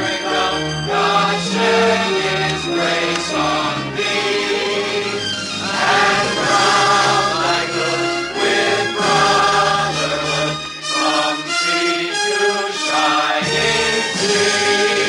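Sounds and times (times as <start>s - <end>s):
upright piano: 0.0s - 12.0s
group singing in chorus: 0.0s - 15.0s.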